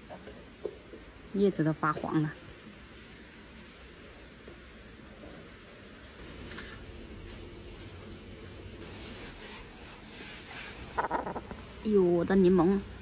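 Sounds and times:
water spraying from hose: 0.0 - 13.0.

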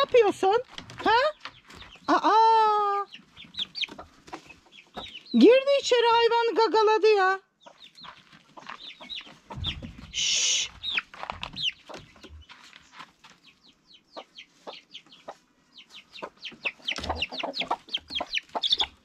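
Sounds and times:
chicks peeping: 0.0 - 6.4, 7.6 - 19.0
low thumps: 9.5 - 11.6.

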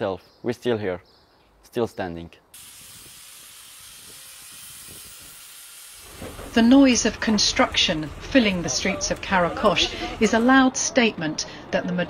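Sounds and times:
power tool hissing on brick: 2.6 - 7.4.

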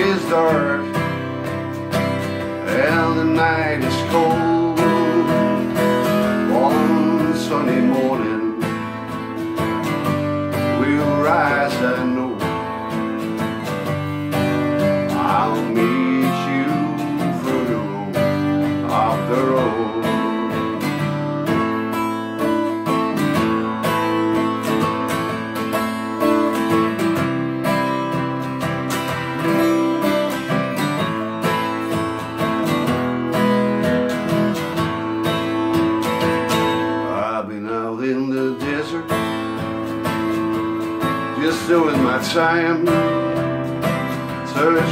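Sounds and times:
acoustic guitar strumming: 0.0 - 44.9.

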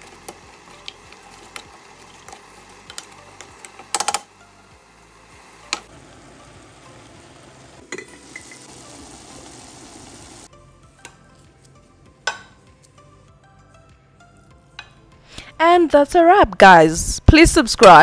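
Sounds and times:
pot simmering and sizzling: 0.0 - 10.5.

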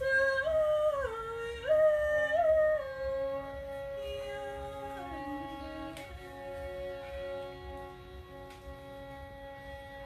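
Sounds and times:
woman singing: 0.0 - 6.3
fiddle: 0.0 - 10.0.

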